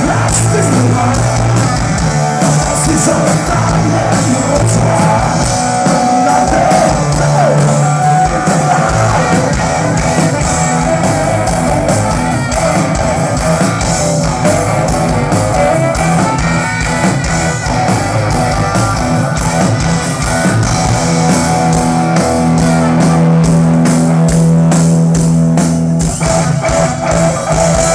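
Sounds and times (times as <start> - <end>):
drum kit: 0.0 - 27.9
electric guitar: 0.0 - 27.9.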